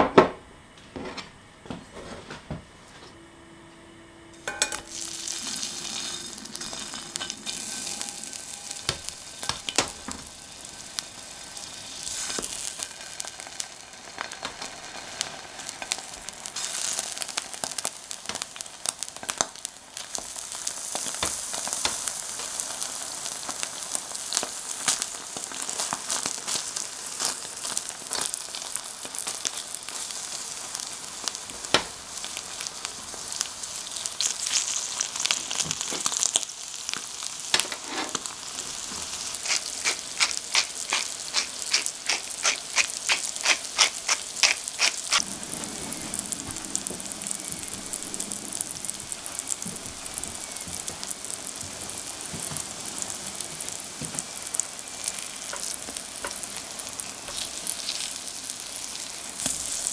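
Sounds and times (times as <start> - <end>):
food sizzling in a frying pan: 4.4 - 59.9.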